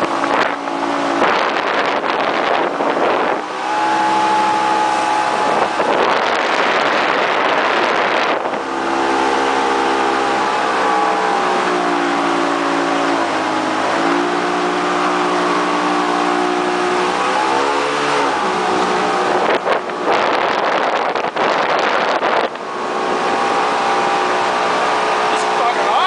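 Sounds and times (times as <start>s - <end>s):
riverboat engine running: 0.0s - 26.0s
wind rush on microphone: 0.0s - 26.0s.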